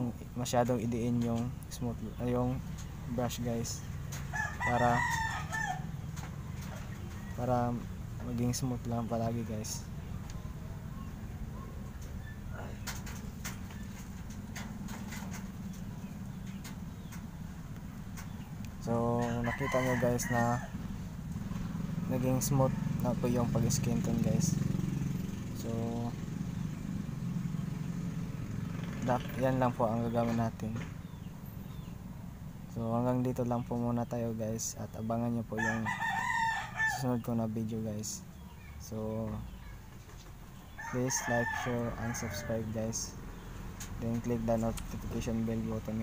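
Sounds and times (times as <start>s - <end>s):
rooster crowing: 4.2s - 6.1s, 19.1s - 21.0s, 21.8s - 23.6s, 35.5s - 37.2s, 40.7s - 43.2s.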